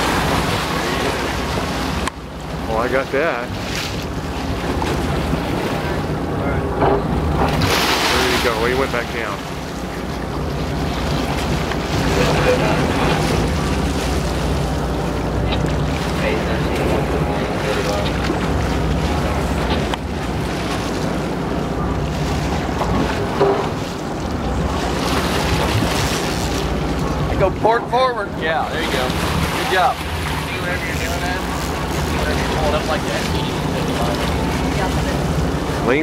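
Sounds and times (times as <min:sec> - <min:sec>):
boat engines humming: 0:00.0 - 0:36.0
water along the hull: 0:00.0 - 0:36.0.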